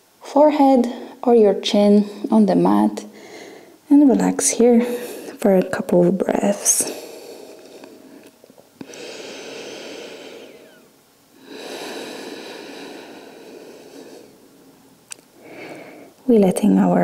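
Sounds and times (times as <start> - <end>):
person breathing slowly: 3.1 - 3.8, 6.9 - 14.6, 15.4 - 16.2.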